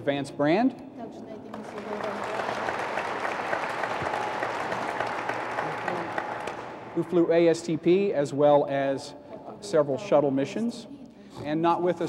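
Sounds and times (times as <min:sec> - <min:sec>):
audience applauding: 0:01.5 - 0:07.1.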